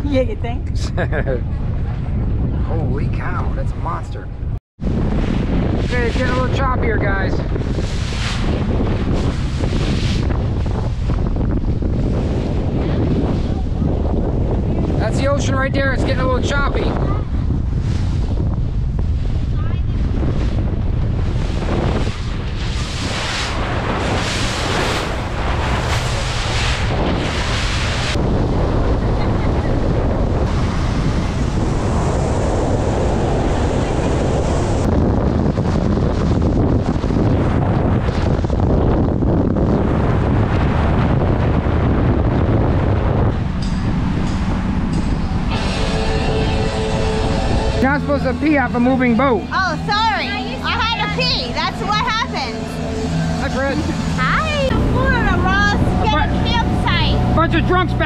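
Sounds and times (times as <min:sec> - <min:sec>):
low rumble of hull and water: 0:00.0 - 0:58.0
wind buffeting microphone: 0:00.0 - 0:58.0.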